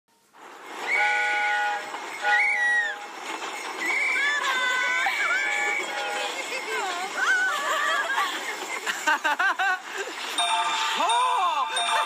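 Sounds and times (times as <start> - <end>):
train whistle blowing: 0.8 - 3.2.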